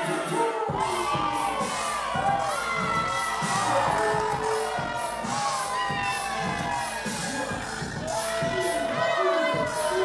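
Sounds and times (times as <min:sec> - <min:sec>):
beat-driven music: 0:00.0 - 0:10.0
crowd shouting and cheering: 0:00.0 - 0:10.0.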